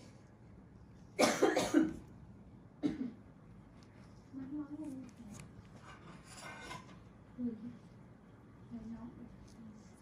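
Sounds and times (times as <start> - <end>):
person coughing: 1.2 - 2.0, 2.8 - 3.2.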